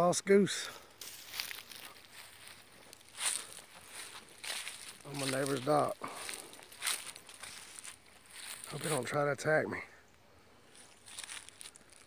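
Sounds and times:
footsteps on grass: 0.6s - 9.3s, 10.6s - 12.0s.

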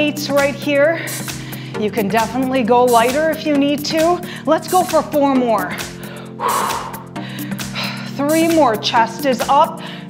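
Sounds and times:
background music: 0.0s - 10.0s
forceful breathy exhale: 6.0s - 7.4s.

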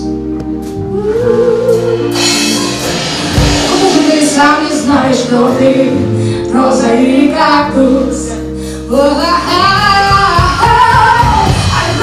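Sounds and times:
drums: 0.0s - 12.0s
live band playing: 0.0s - 12.0s.

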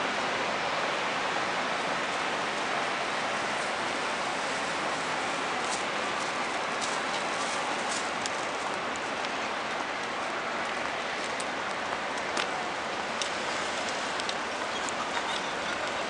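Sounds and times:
city street noise: 0.0s - 16.0s.

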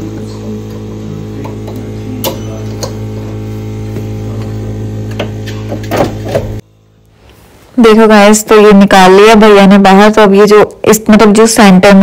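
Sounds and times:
milling machine electrical hum: 0.0s - 12.0s.

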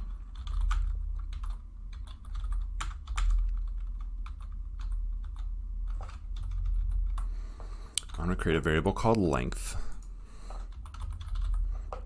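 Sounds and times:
typing on computer keyboard: 0.0s - 7.3s, 10.7s - 11.7s
steady low hum: 0.0s - 12.0s.

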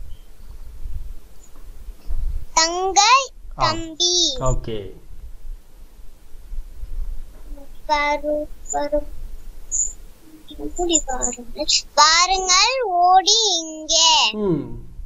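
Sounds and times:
low hum: 0.0s - 12.7s
child chanting a rhyme: 2.6s - 4.7s, 7.5s - 9.1s, 10.2s - 14.4s.

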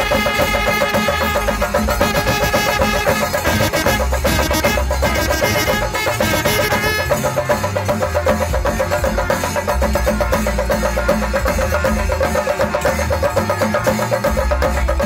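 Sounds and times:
cylindrical drums beaten with sticks: 0.0s - 15.0s.

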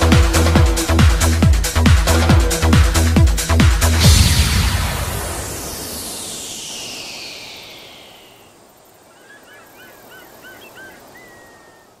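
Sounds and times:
electronic music: 0.0s - 8.4s
falling sweep: 3.8s - 8.7s.

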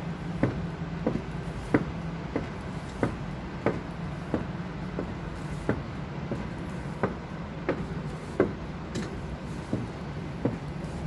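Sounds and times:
footsteps walking: 0.0s - 11.0s
steady low hum: 0.0s - 11.0s.

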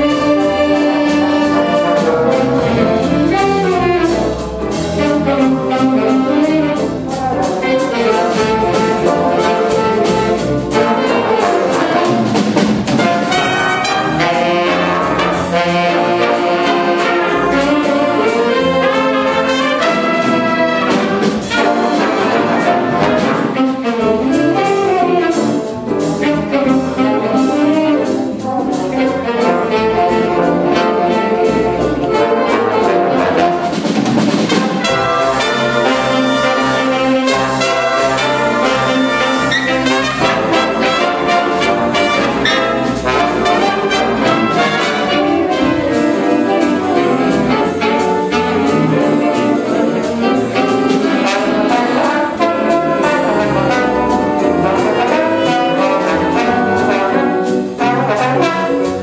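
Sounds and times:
jazz big band playing: 0.0s - 59.0s.

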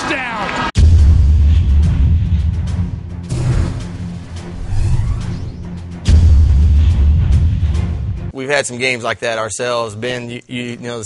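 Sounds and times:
dramatic theme music: 0.8s - 8.4s
whooshing sweeps: 1.4s - 8.1s.

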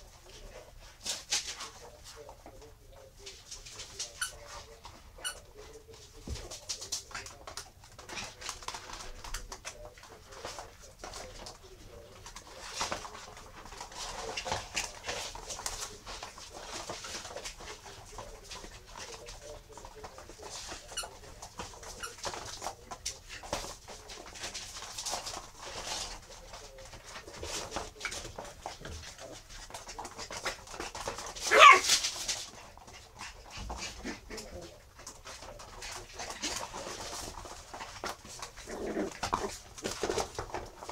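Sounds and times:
paws clicking on hard floor: 0.0s - 40.9s
puppy vocal noises: 25.5s - 40.9s.

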